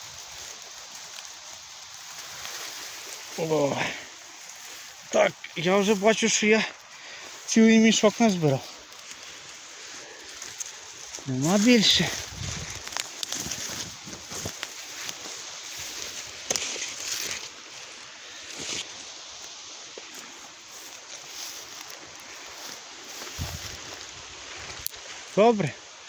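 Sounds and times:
footsteps through dry grass: 0:00.0 - 0:26.0
light crackles: 0:00.0 - 0:26.0.

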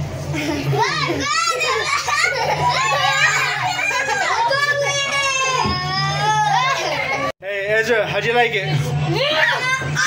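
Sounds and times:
low hum of spinning ride: 0:00.0 - 0:10.0
children squealing: 0:01.2 - 0:07.3.

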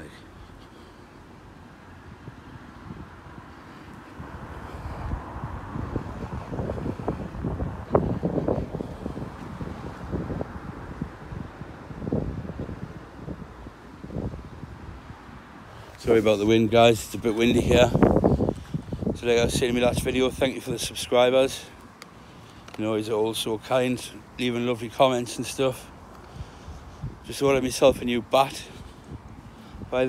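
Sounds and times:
wind buffeting microphone: 0:01.2 - 0:30.0.

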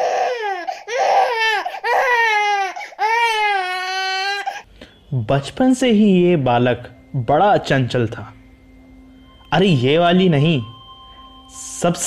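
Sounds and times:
newborn baby crying: 0:00.0 - 0:04.7.

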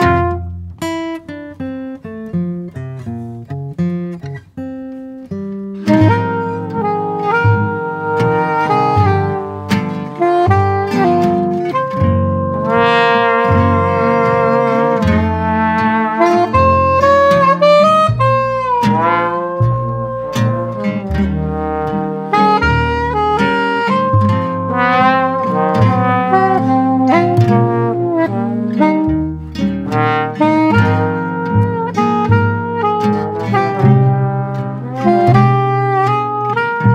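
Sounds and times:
trombone: 0:00.0 - 0:00.6, 0:05.9 - 0:36.9
soprano saxophone: 0:00.0 - 0:01.0, 0:05.8 - 0:36.9
acoustic guitar: 0:00.0 - 0:36.9
low bass line: 0:06.0 - 0:17.4, 0:18.1 - 0:36.9.

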